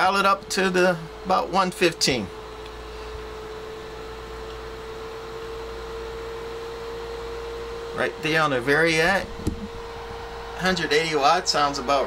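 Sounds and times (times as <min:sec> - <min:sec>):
cooling fan running: 0:00.0 - 0:12.0
low hum: 0:00.0 - 0:12.0.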